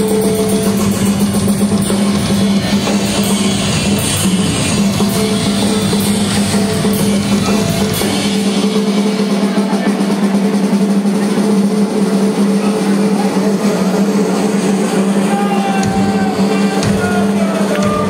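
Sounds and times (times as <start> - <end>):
drum rolls: 0.0 - 18.0.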